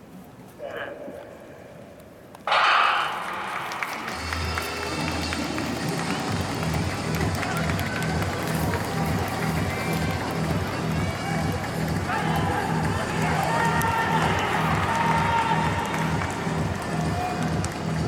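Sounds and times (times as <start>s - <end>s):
spectators cheering: 2.5s - 18.0s
rhythmic low beat: 3.2s - 18.0s.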